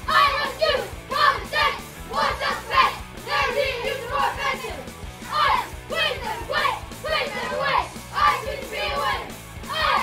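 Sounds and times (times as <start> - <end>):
background music: 0.0 - 10.0
children shouting in unison: 0.0 - 10.0.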